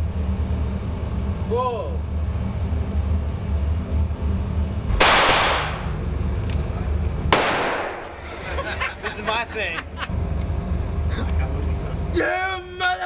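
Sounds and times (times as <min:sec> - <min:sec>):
low steady hum: 0:00.0 - 0:13.0
gunshots echoing indoors: 0:05.0 - 0:05.9, 0:07.3 - 0:08.2.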